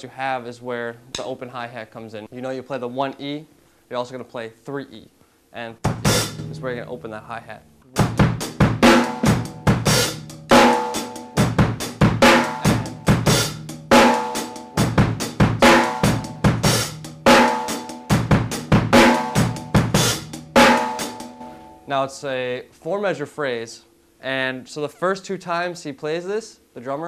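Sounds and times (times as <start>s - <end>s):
snare drum: 5.9s - 7.3s, 8.0s - 21.2s
bass drum: 5.9s - 10.8s, 11.4s - 17.2s, 18.1s - 20.6s
hi-hat: 8.4s - 18.0s.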